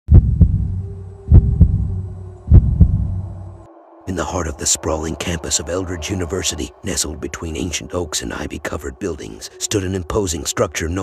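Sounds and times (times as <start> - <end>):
heartbeat thumps: 0.1 - 3.4
low hum: 0.1 - 9.4.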